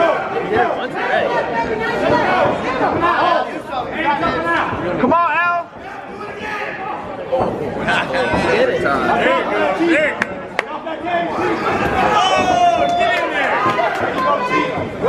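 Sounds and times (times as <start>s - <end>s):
crowd talking and shouting: 0.0s - 15.0s.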